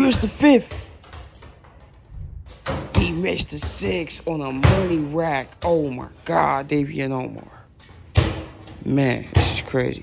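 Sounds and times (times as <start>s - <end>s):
ball bouncing on concrete: 0.0s - 10.0s.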